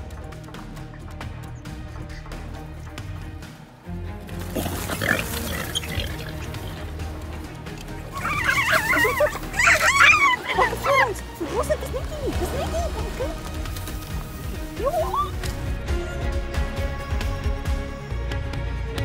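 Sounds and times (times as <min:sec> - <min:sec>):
background music: 0:00.0 - 0:19.0
high wavering squealing cries: 0:04.9 - 0:06.8, 0:08.1 - 0:11.1.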